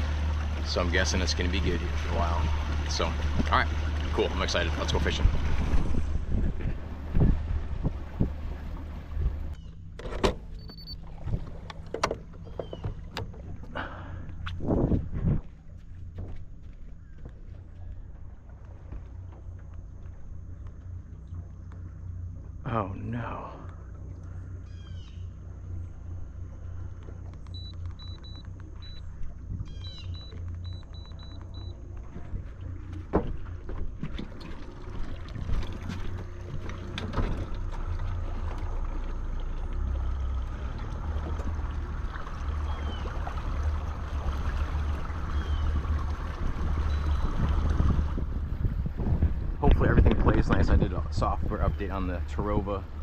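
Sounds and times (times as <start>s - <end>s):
steady low hum: 0.0s - 53.0s
high electronic beeps: 27.5s - 29.1s, 29.8s - 31.8s.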